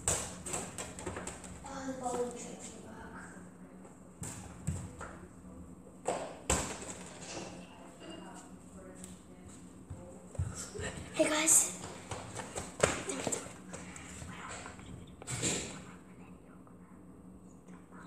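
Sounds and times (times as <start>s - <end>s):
football kicked and bouncing: 0.0s - 1.6s, 4.2s - 5.1s, 6.0s - 7.1s, 11.8s - 13.4s.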